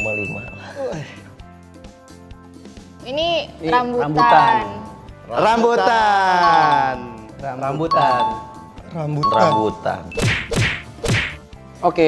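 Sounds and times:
falling swish hits: 10.2s - 11.4s.

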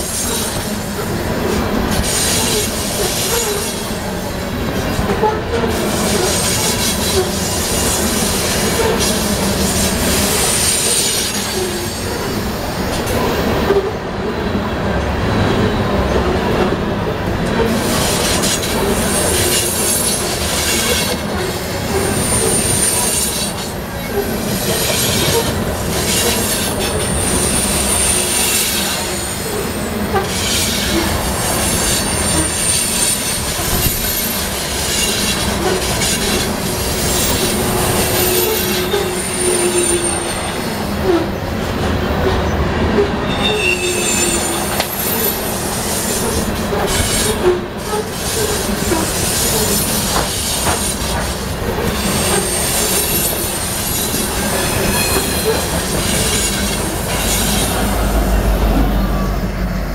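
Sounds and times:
train wheels rumbling on rails: 0.0s - 59.9s
high wheel squeal: 5.2s - 16.2s, 17.7s - 41.5s, 42.2s - 59.7s
clacks over rail joints: 48.3s - 57.9s.

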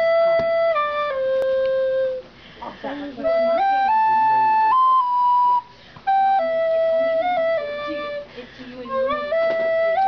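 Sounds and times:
recorder played through nose: 0.0s - 10.0s.

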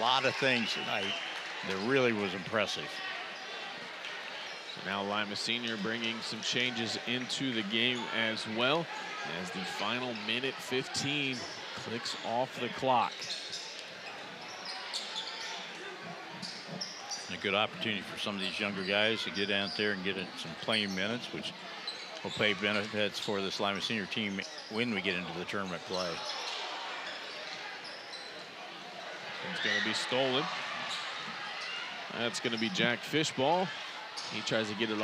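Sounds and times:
crowd murmur: 0.0s - 35.0s
sneaker squeaks: 13.0s - 17.4s, 20.7s - 23.6s, 24.2s - 28.6s, 29.2s - 32.9s, 34.1s - 34.5s.

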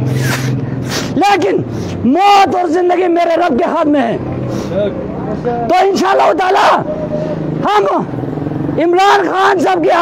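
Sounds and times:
vehicle engine humming: 0.0s - 10.0s
man speaking: 1.2s - 8.1s.

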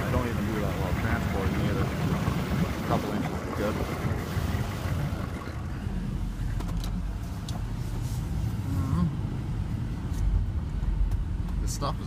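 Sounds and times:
truck engine idling: 0.0s - 7.9s.

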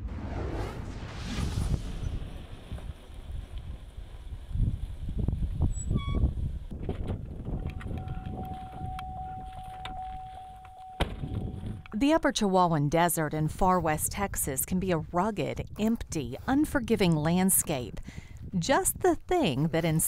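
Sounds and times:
swoosh: 0.0s - 3.6s
low rumble: 0.0s - 5.7s, 11.0s - 12.0s
steady held tone: 7.6s - 12.0s.

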